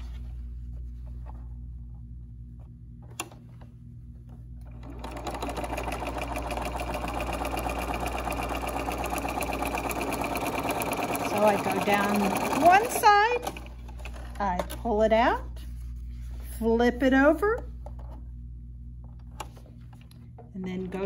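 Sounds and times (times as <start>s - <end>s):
low hum: 0.0s - 5.1s
electric sewing machine stitching: 4.7s - 14.4s.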